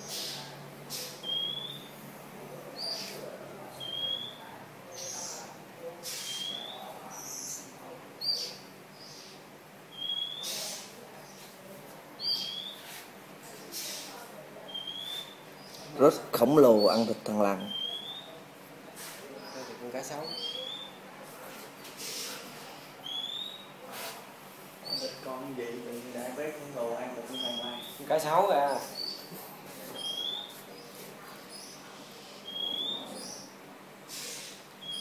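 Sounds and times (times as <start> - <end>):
bird chirping: 0.0 - 2.0, 2.8 - 11.4, 12.2 - 12.9, 14.7 - 18.4, 19.4 - 21.0, 23.0 - 23.8, 24.8 - 25.4, 27.0 - 29.3, 29.9 - 35.0
high whistled chirp: 1.2 - 1.9, 3.8 - 4.4, 9.9 - 10.6, 27.3 - 28.0, 32.4 - 33.5, 34.4 - 35.0
brief hiss: 34.1 - 34.6.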